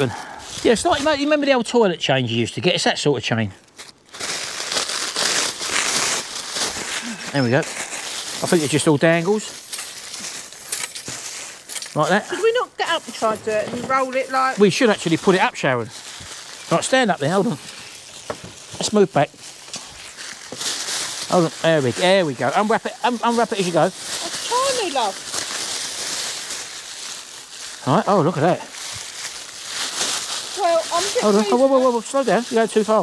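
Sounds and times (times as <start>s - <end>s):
plastic wrapping rustling: 0.0s - 2.4s, 3.2s - 33.0s
plastic packaging crinkling: 3.6s - 33.0s
chain-link curtain unrolling: 8.2s - 12.2s.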